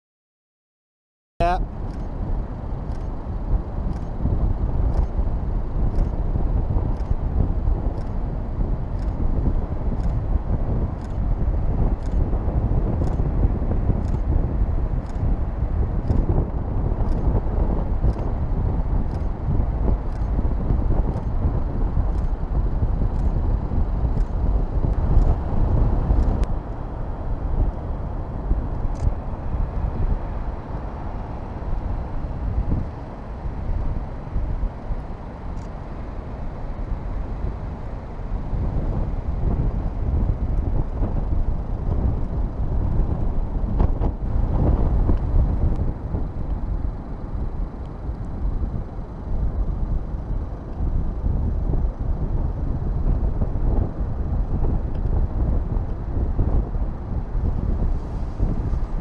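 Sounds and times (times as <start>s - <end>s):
wind rumbling on microphone: 1.4s - 59.0s
faint ticks: 1.9s - 2.1s, 2.8s - 3.2s, 3.9s - 4.2s, 4.8s - 5.2s, 5.9s - 6.2s, 6.8s - 7.2s, 7.9s - 8.2s, 8.9s - 9.2s, 9.9s - 10.2s, 11.0s - 11.3s, 11.9s - 12.3s, 13.0s - 13.3s, 13.9s - 14.3s, 15.0s - 15.3s, 16.0s - 16.4s, 17.0s - 17.4s, 18.0s - 18.3s, 19.0s - 19.3s, 20.1s - 20.4s, 22.0s - 22.4s, 23.0s - 23.4s, 24.1s - 25.4s, 35.6s - 35.8s.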